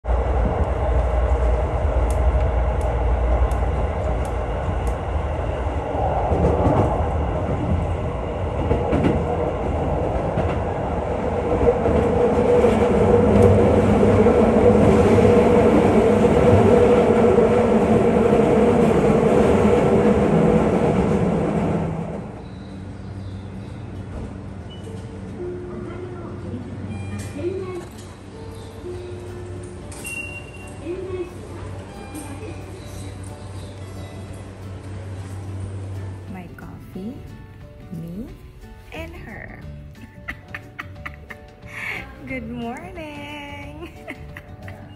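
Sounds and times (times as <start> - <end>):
train wheels rumbling on rail: 0.0 - 37.1.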